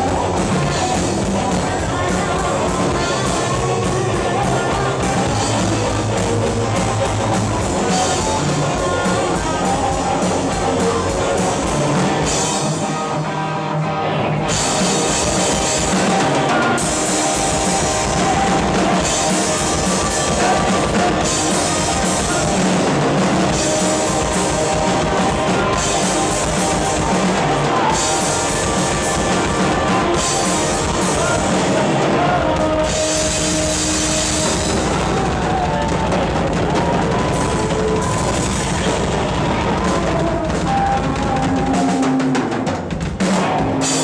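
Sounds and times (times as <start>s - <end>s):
rock band playing live: 0.0s - 44.0s.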